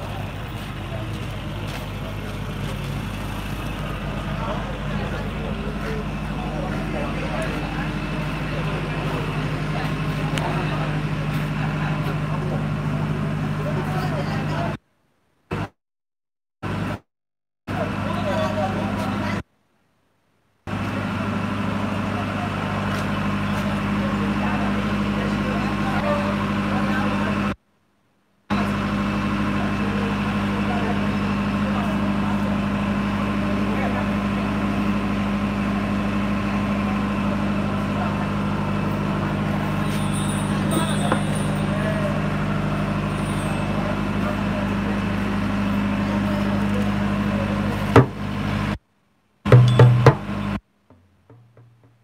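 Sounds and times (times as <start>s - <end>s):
indistinct voices: 0.0s - 14.8s, 28.5s - 48.5s
low motor hum: 0.0s - 14.8s.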